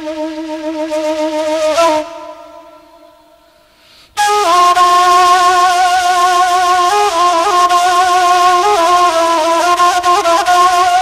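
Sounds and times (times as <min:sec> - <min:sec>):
flute melody: 0:00.0 - 0:03.5, 0:04.2 - 0:11.0.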